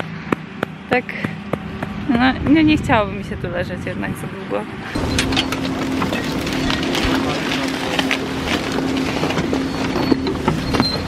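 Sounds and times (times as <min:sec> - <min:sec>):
chairlift machinery hum: 0:04.3 - 0:11.0.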